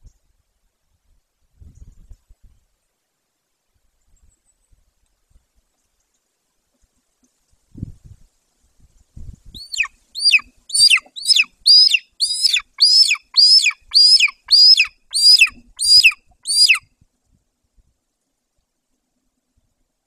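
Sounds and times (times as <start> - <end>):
eagle whistling calls: 9.6 - 16.9.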